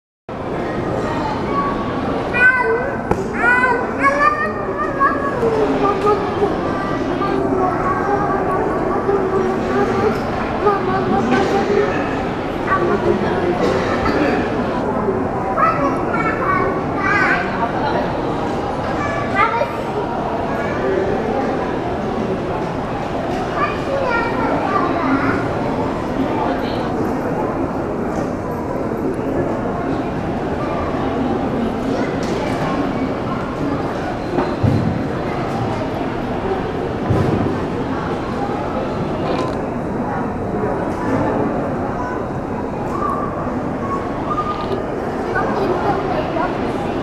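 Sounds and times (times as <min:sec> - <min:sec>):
background murmur of voices: 0:00.3 - 0:47.0
crowd chatter: 0:00.3 - 0:47.0
children's voices: 0:00.4 - 0:47.0.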